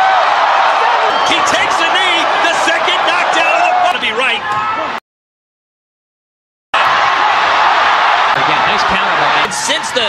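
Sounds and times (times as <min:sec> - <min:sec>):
crowd shouting and cheering: 0:00.0 - 0:05.0, 0:06.7 - 0:10.0.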